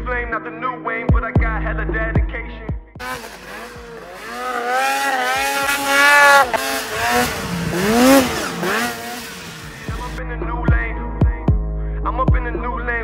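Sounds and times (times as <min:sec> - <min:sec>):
snowmobile engine revving: 0:03.0 - 0:10.2.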